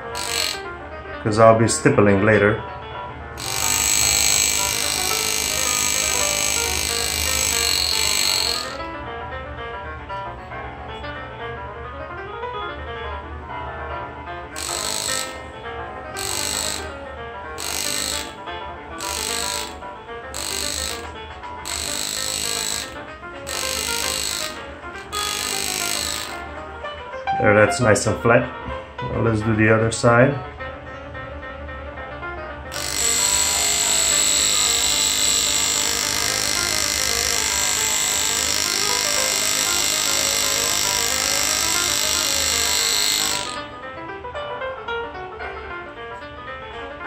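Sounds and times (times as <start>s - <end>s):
engraving graver buzzing on metal: 0.0s - 0.8s, 3.4s - 9.0s, 14.5s - 26.8s, 32.7s - 43.8s
guitar music: 14.3s - 29.1s.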